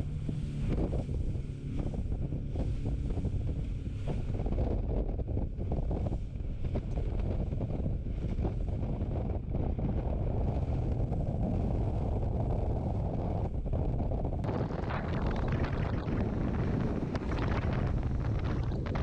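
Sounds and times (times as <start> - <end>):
boat hull rushing through waves: 0.0 - 19.0
wind buffeting microphone: 0.0 - 19.0.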